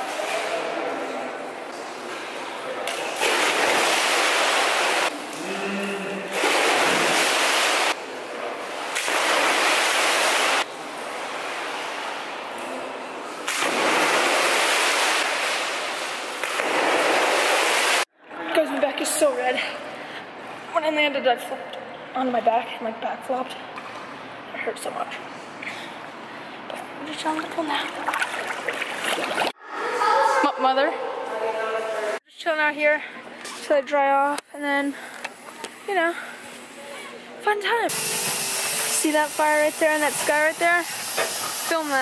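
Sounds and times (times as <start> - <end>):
pool water rushing and splashing: 0.0 - 18.1, 27.2 - 29.6, 37.9 - 42.0.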